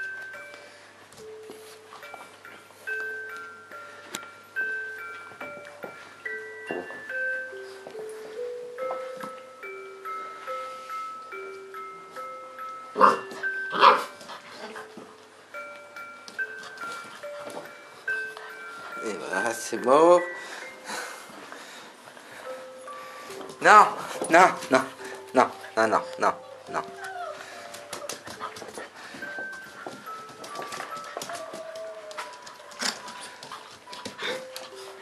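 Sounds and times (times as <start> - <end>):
light chiming music: 0.0 - 35.0
puppy barking: 13.0 - 14.1
puppies whimpering: 25.7 - 29.7, 30.4 - 35.0.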